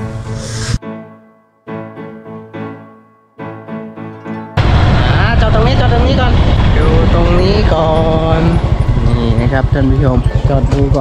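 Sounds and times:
wind buffeting microphone: 0:04.6 - 0:11.0
man talking: 0:06.7 - 0:11.0.

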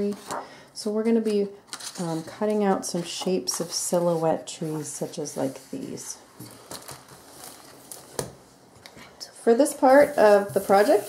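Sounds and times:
book handling sounds: 0:00.0 - 0:09.1.

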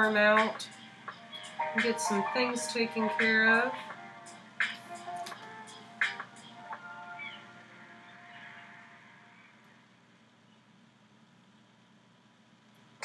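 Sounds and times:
faint background music: 0:00.0 - 0:10.5.

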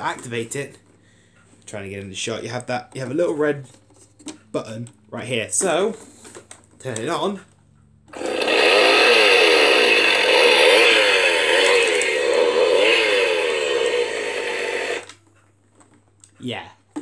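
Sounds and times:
toy chainsaw revving: 0:08.1 - 0:15.1.

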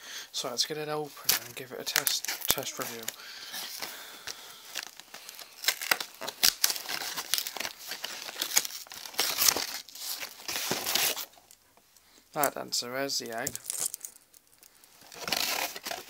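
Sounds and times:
packaging crinkling and tearing: 0:01.2 - 0:11.6, 0:13.3 - 0:16.0.

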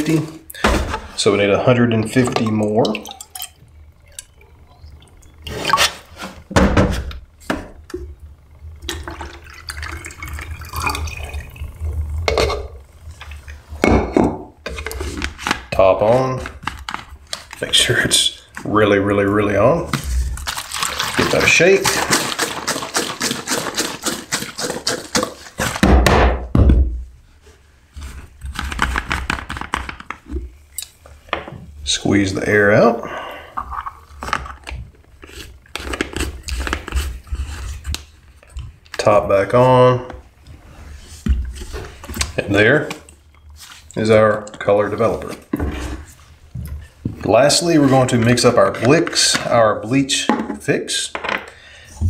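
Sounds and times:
plastic containers clattering: 0:00.0 - 0:03.5, 0:19.8 - 0:26.8
water pouring into plastic containers: 0:01.2 - 0:06.2, 0:08.8 - 0:12.3, 0:20.2 - 0:25.4.

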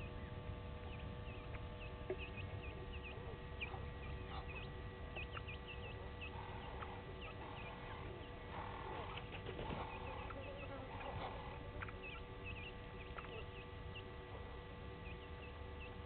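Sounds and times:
chicks high peeps: 0:00.0 - 0:16.0
bird soft clucking calls: 0:00.8 - 0:16.0.

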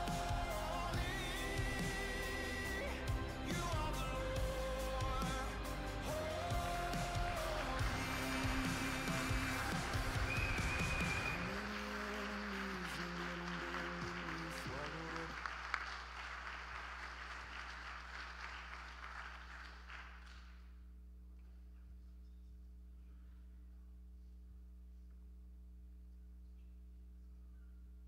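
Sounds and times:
held notes of song music: 0:00.0 - 0:15.3
congregation applauding: 0:06.1 - 0:20.7.

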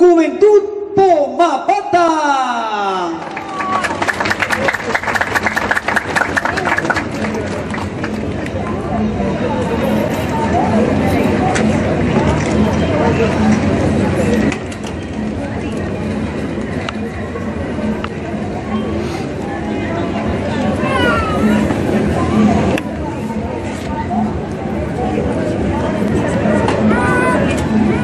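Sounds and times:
hubbub of crowd voices: 0:00.0 - 0:28.0
crowd clapping: 0:02.9 - 0:08.6.

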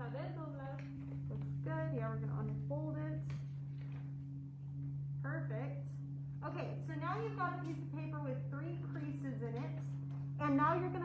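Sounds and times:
woman speaking: 0:00.0 - 0:03.4, 0:05.3 - 0:11.0
steady low hum: 0:00.0 - 0:11.0.

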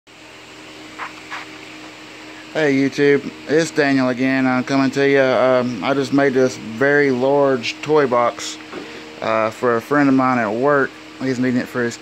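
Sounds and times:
low hum and hiss: 0:00.1 - 0:12.0.

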